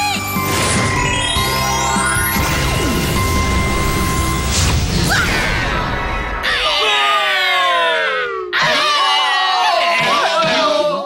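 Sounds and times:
cartoon character screaming: 0:06.4 - 0:11.0
wavering yell: 0:06.4 - 0:11.0.

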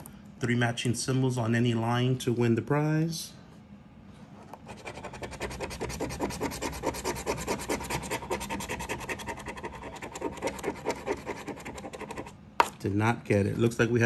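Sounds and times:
scratcher scraping lottery ticket: 0:04.7 - 0:12.3.

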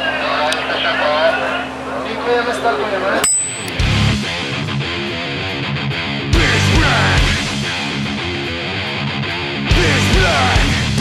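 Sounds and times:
television hum: 0:00.0 - 0:03.2.

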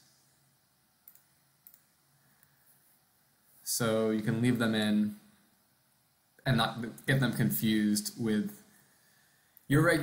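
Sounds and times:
faint computer mouse clicks: 0:01.0 - 0:02.6.

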